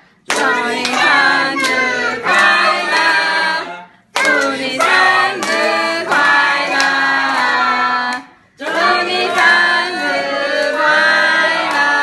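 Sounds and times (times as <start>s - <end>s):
group singing together: 0.0s - 12.0s
people clapping in time: 0.2s - 3.5s, 4.1s - 12.0s.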